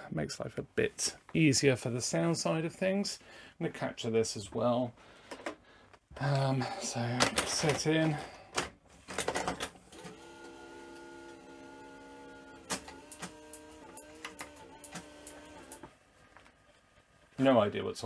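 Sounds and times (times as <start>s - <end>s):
motor whine: 10.0s - 15.8s.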